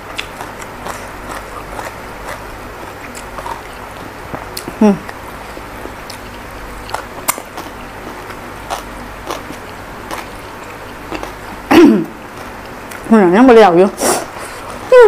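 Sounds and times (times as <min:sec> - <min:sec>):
mouth sounds of eating: 0:00.0 - 0:13.1
throat-clearing grunt: 0:11.7 - 0:12.2.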